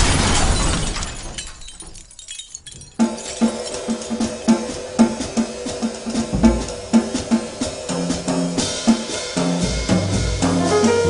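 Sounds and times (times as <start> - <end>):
drum kit beat: 3.0 - 11.0
jazz trio playing: 5.0 - 11.0.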